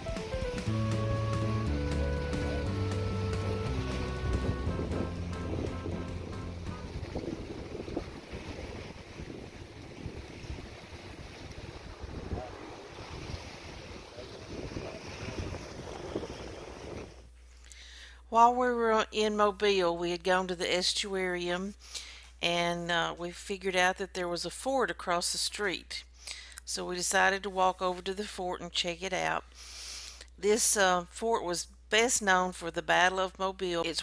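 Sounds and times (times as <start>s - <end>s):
instrumental background music: 0.0s - 7.2s
small waves washing onto beach: 0.0s - 17.3s
wind on microphone: 1.4s - 17.3s.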